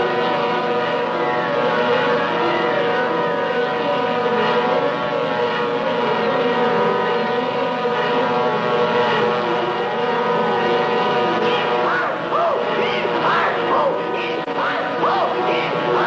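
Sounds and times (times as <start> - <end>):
cartoon diving aircraft drone: 0.0 - 16.0.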